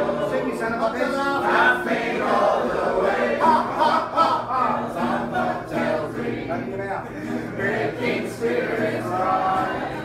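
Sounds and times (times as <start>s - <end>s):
group singing in chorus: 0.0s - 10.0s.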